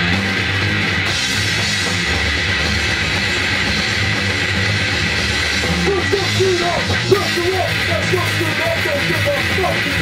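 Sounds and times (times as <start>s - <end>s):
grindcore band playing: 0.0s - 10.0s.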